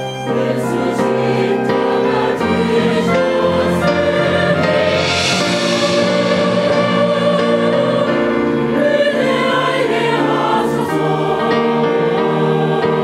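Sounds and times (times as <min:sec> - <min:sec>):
choir singing sustained chords: 0:00.0 - 0:13.0
small orchestra playing: 0:00.0 - 0:13.0.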